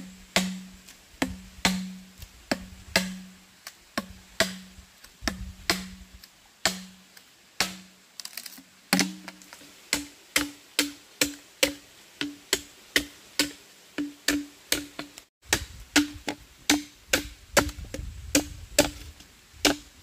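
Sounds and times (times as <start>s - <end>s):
machete chopping bamboo: 0.0s - 20.0s.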